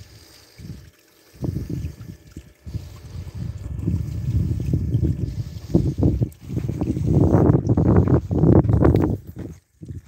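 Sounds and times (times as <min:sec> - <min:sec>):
wind buffeting microphone: 0:00.6 - 0:10.0.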